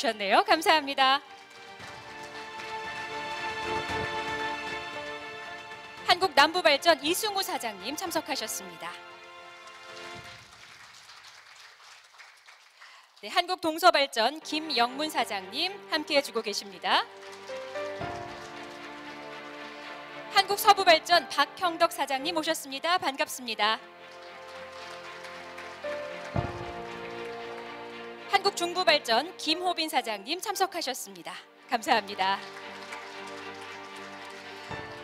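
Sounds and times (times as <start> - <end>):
audience applauding: 1.2 - 7.2, 7.9 - 13.3, 16.3 - 21.4, 23.8 - 29.4, 31.8 - 35.0
music with held notes: 1.2 - 10.4, 14.5 - 22.4, 23.8 - 30.0, 31.5 - 35.0.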